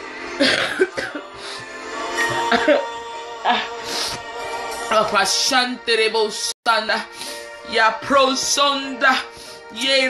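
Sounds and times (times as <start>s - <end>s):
woman clearing her throat: 0.4s - 1.3s, 2.3s - 2.9s
woman coughing: 0.4s - 1.4s, 2.3s - 3.7s.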